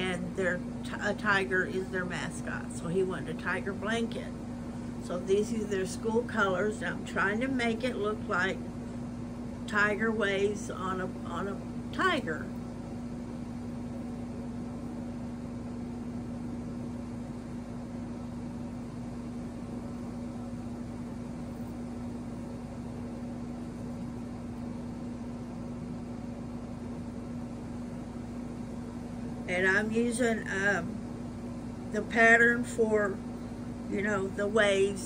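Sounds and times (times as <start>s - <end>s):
steady mechanical hum: 0.0s - 35.0s.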